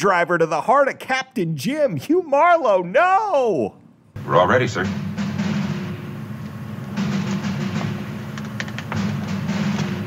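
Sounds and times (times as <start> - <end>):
drama soundtrack music: 4.2 - 10.0.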